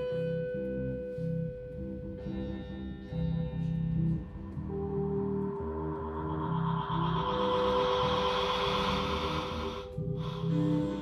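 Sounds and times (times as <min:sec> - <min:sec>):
choppy low bass: 0:01.2 - 0:11.0
held drone tones: 0:04.2 - 0:11.0
hissy noise layer: 0:05.4 - 0:11.0.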